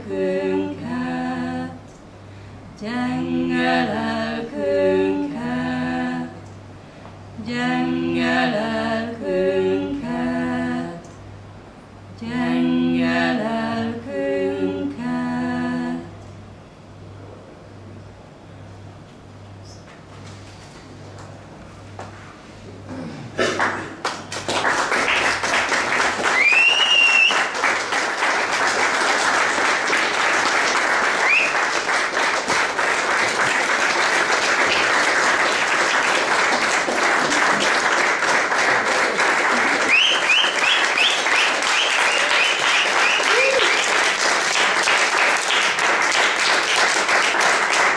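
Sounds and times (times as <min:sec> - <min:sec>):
audience applause: 0:23.6 - 0:47.9.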